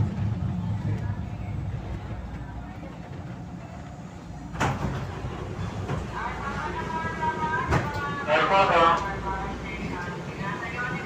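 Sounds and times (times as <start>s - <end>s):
low rumble of train running: 0.0s - 11.0s
passengers talking: 0.0s - 11.0s.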